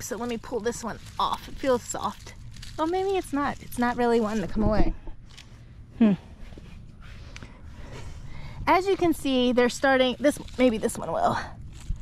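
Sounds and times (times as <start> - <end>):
rustling among plants: 0.0 - 5.7, 6.3 - 12.0
woman humming hmm: 6.0 - 6.4.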